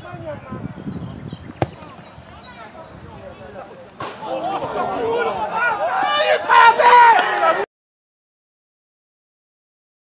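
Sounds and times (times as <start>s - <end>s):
people shouting and calling: 4.1s - 7.7s.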